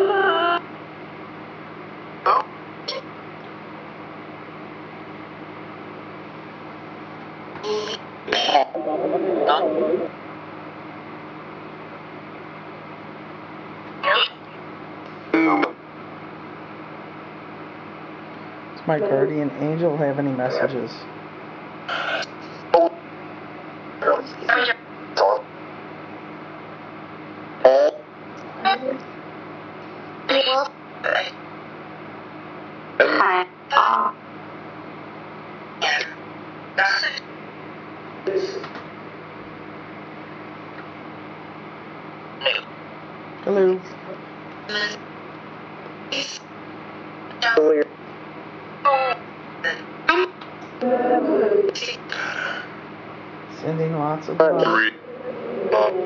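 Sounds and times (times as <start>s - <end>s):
garbled voice fragment: 0.0s - 0.6s, 2.3s - 3.0s, 7.7s - 10.1s, 14.0s - 14.4s, 15.4s - 15.7s, 21.9s - 23.0s, 27.7s - 28.0s, 30.3s - 31.4s, 33.0s - 34.2s, 35.8s - 36.2s, 36.8s - 37.3s, 42.4s - 42.7s, 44.7s - 45.0s, 46.1s - 46.4s, 48.9s - 50.4s, 51.7s - 52.7s, 54.6s - 56.0s
steady white noise hiss: 0.0s - 56.0s.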